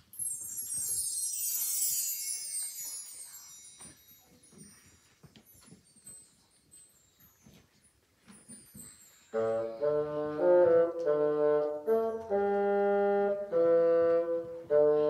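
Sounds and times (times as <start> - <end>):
shimmering chime sweep: 0.0 - 5.2, 8.7 - 10.0.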